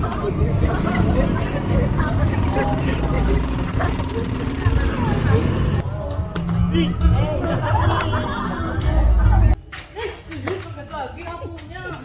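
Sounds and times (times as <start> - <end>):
passing cars and motorbikes: 0.0 - 5.9
many people talking: 0.0 - 9.7.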